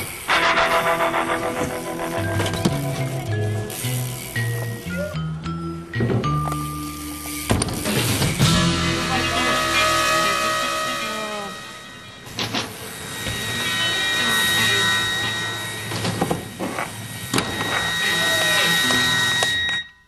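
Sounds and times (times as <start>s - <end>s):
psychedelic rock music: 0.2s - 19.7s.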